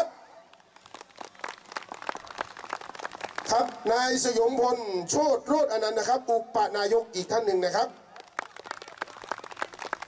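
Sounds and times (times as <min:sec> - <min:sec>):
light applause: 0:00.4 - 0:04.0, 0:07.9 - 0:10.0.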